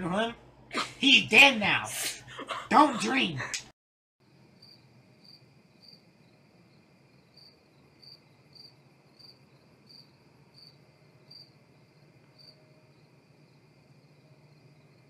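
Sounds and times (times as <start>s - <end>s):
faint crickets chirping: 4.2s - 15.0s
low steady hiss: 4.2s - 15.0s.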